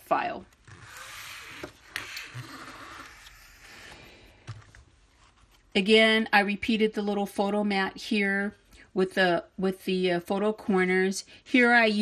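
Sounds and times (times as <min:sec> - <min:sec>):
cardstock pages rustling and scraping: 0:00.5 - 0:05.7.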